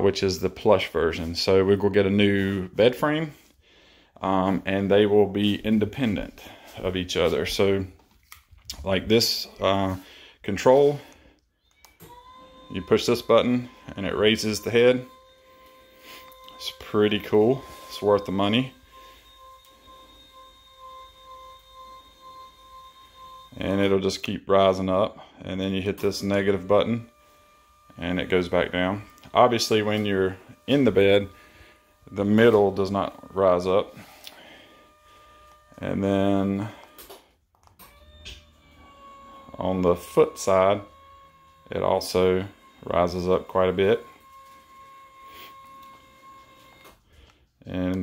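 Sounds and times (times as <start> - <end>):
electric motor hum with whine: 4.5 - 48.0.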